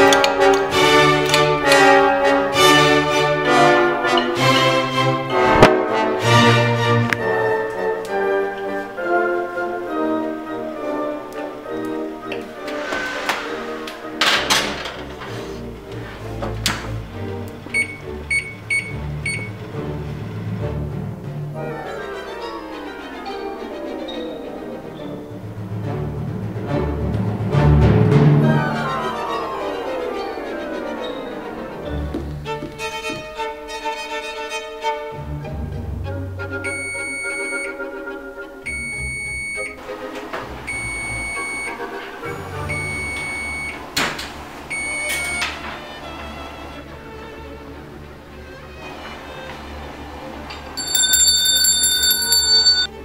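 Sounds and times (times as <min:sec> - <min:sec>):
background music: 0:00.0 - 0:53.0
oven control panel beeping: 0:17.7 - 0:19.6, 0:38.7 - 0:39.7, 0:40.7 - 0:41.8, 0:42.7 - 0:43.8, 0:44.7 - 0:45.6.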